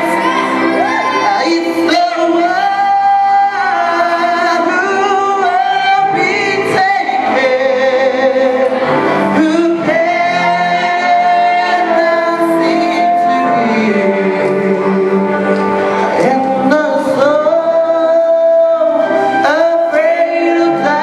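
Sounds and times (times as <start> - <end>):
man singing into microphone: 0.0 - 21.0
musical accompaniment: 0.0 - 21.0.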